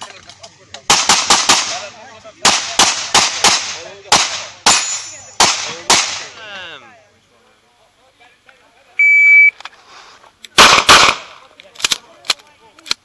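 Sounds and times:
handgun shots: 0:10.6 - 0:12.0.

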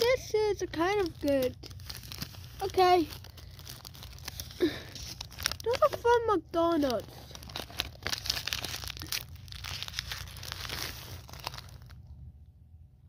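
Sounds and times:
plastic wrappers crinkling: 0:00.0 - 0:12.1.

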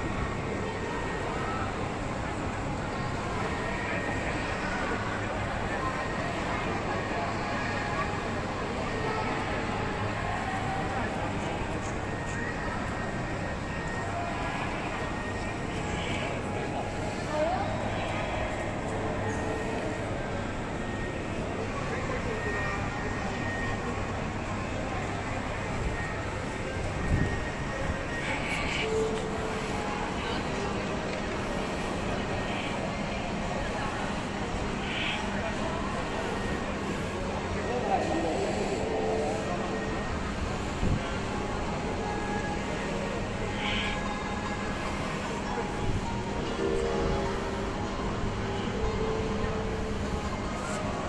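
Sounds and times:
faint distant voices: 0:00.0 - 0:51.0
indistinct chatter of people: 0:00.0 - 0:51.0.

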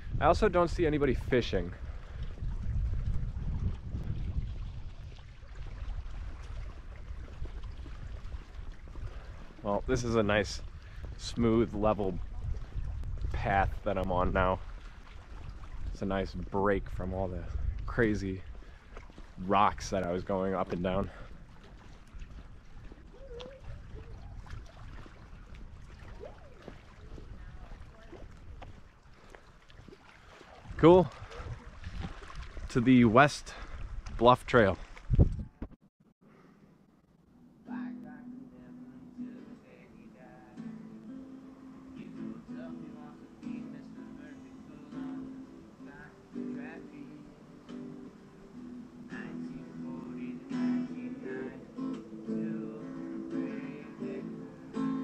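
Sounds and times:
wind buffeting microphone: 0:00.0 - 0:35.8.

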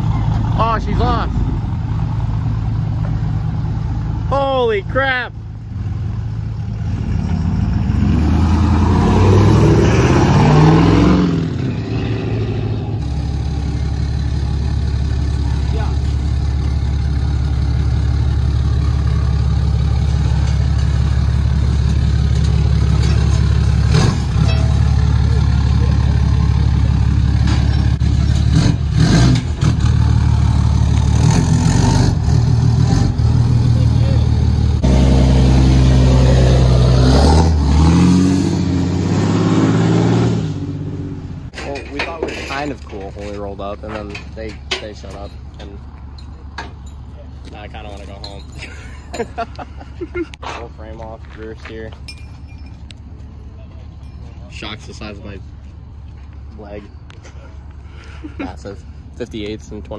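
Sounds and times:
truck engine idling: 0:00.0 - 0:07.9, 0:12.8 - 0:31.3.

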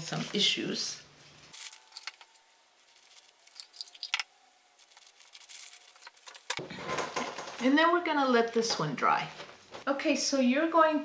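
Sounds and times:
paper rustling: 0:01.3 - 0:07.6.

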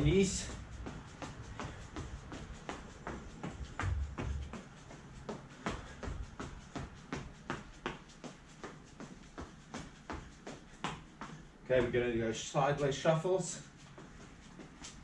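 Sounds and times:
running footfalls on tiled floor: 0:00.0 - 0:12.2, 0:13.6 - 0:15.0.

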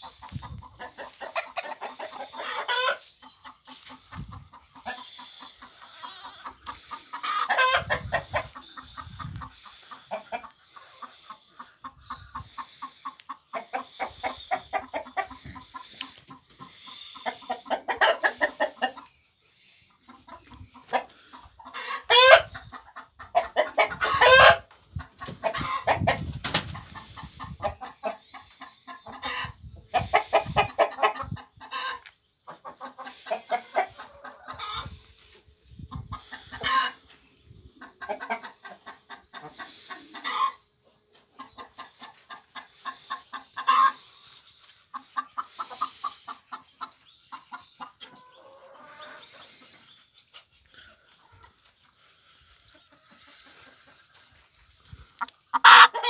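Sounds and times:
chickens clucking: 0:00.0 - 0:56.0
loud short rising calls: 0:05.2 - 0:06.6.

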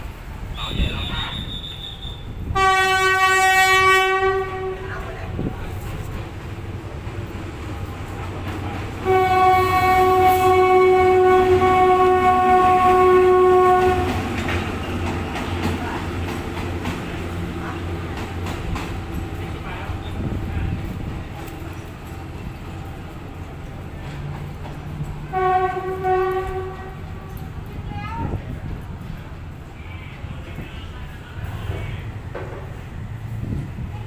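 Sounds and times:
train horn blasts: 0:00.7 - 0:05.1, 0:09.0 - 0:14.3, 0:25.3 - 0:27.4.

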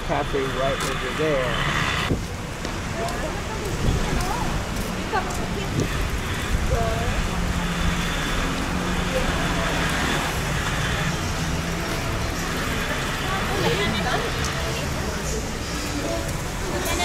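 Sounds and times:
car engine hum: 0:00.0 - 0:17.0
faint voices: 0:02.4 - 0:17.0.

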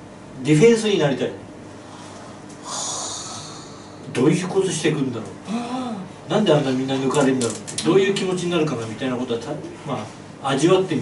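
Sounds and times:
person breathing in quickly: 0:01.8 - 0:04.0.

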